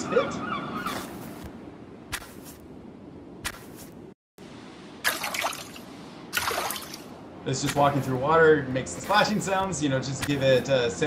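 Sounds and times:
steady background wash: 0.0 - 11.0
footsteps splashing in water: 6.4 - 7.0.

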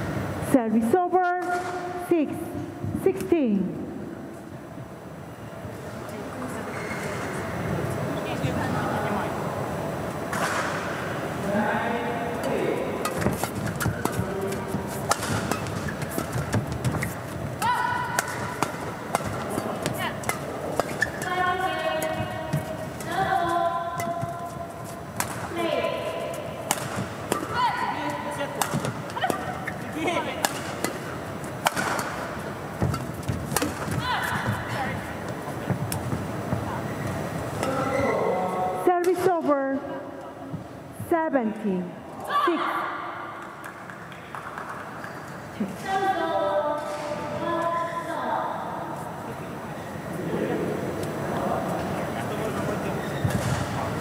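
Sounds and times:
shoes squeaking on court floor: 6.6 - 7.4, 13.1 - 17.6, 18.4 - 25.2, 28.0 - 38.4, 52.5 - 53.9
rackets striking shuttlecock: 13.0 - 25.6, 26.6 - 34.6.

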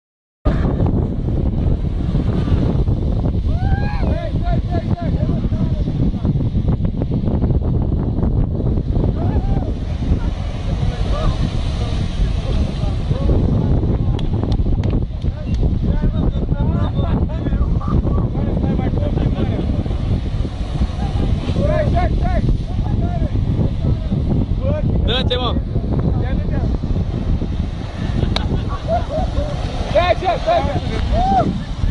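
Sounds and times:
wind buffeting microphone: 0.4 - 31.9
person shouting: 3.5 - 4.3, 30.1 - 31.6.

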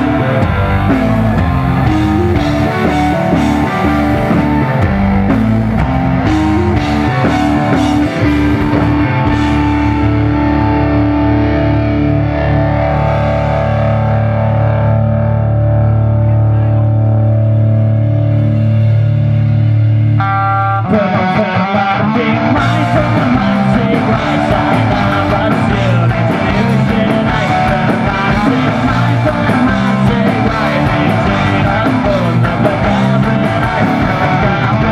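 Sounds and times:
electric guitars sustained chords: 0.0 - 34.9
rock band with drums: 0.0 - 34.9.

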